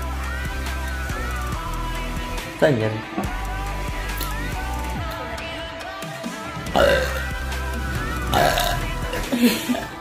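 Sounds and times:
background music: 0:00.0 - 0:10.0
loud burps: 0:06.7 - 0:10.0
laughter: 0:09.2 - 0:10.0.

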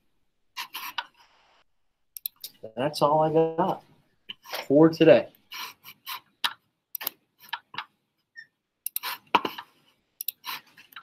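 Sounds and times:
computer mouse clicking: 0:02.2 - 0:02.5, 0:06.4 - 0:07.9, 0:08.8 - 0:09.1, 0:10.2 - 0:11.0.

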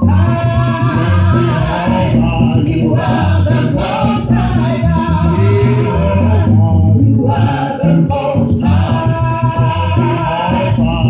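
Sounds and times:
electric bass guitar: 0:00.0 - 0:11.0
people singing together: 0:00.0 - 0:11.0.

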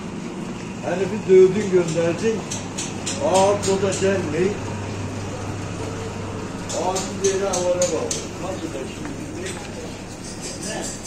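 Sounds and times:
steady low hum: 0:00.0 - 0:11.0
person speaking: 0:06.5 - 0:11.0.

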